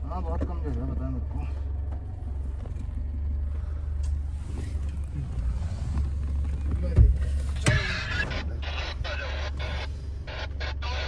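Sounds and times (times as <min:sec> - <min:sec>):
suv engine rumble inside cabin: 0:00.0 - 0:11.0.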